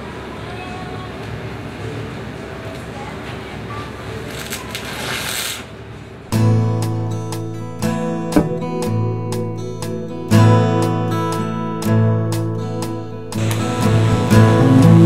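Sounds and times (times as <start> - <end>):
arc welding hiss: 4.3 - 5.7
strummed acoustic guitar music: 6.3 - 15.0.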